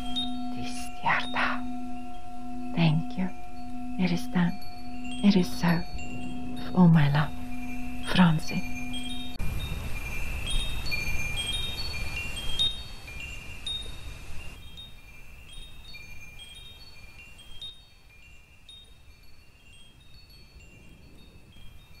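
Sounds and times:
high chimes ringing: 0.0 - 22.0.

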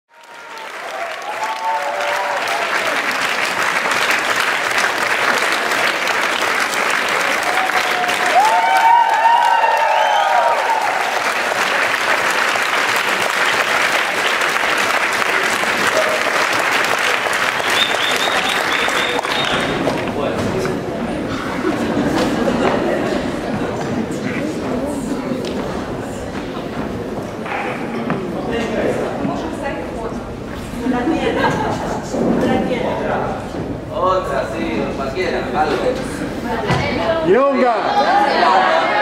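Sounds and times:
audience applauding: 0.1 - 23.5.

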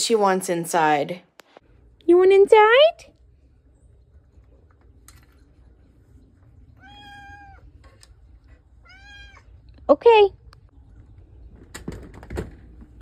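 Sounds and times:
cat meowing: 6.8 - 7.7, 8.8 - 9.5.

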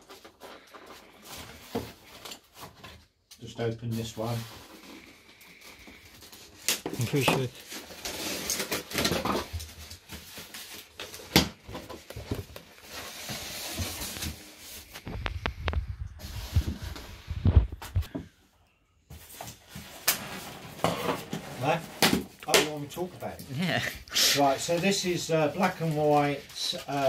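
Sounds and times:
cardboard box scraping and rustling: 12.4 - 15.0.

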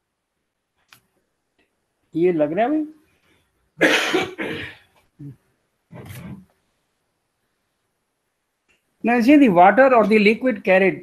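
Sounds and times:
person clearing throat: 3.8 - 4.8
person coughing: 3.8 - 4.8.

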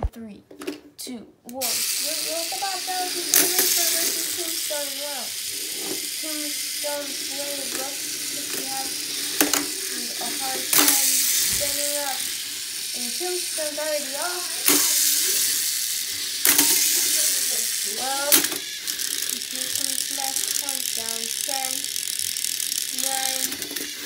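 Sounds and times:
voices: 1.0 - 24.0
toy robots whirring: 1.5 - 24.0
toy robots knocking together: 1.6 - 24.0.

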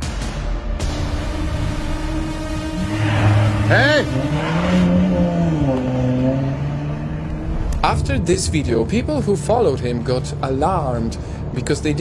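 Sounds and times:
car driving past: 2.8 - 8.9
man's voice: 7.8 - 12.0.

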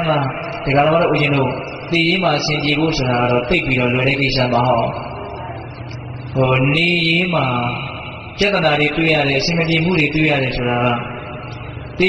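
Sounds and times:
man chanting: 0.0 - 5.6, 6.3 - 12.0.

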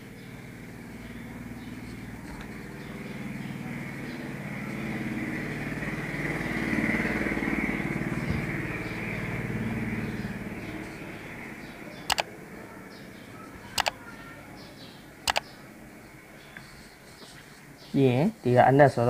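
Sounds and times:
vehicle engine passing by: 0.0 - 16.9.

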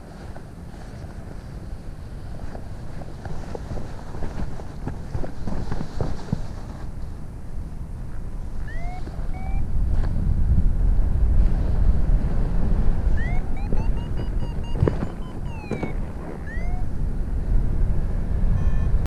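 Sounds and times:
short rising and falling chirps: 8.7 - 9.7, 13.2 - 16.9.

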